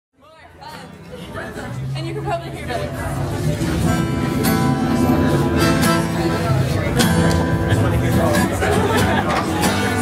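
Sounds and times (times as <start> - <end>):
people chattering: 0.2 - 10.0.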